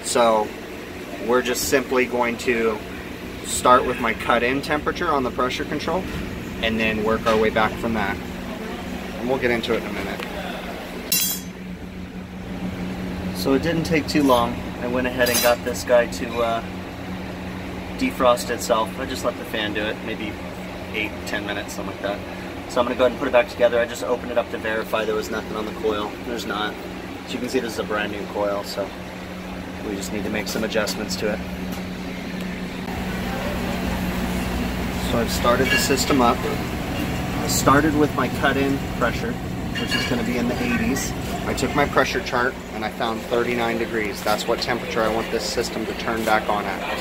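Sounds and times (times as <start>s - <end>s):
cooler fan motor humming: 0.0s - 47.0s.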